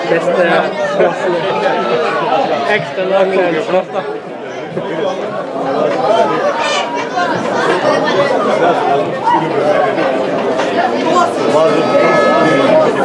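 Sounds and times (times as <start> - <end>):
spectators chattering: 0.0 - 13.0.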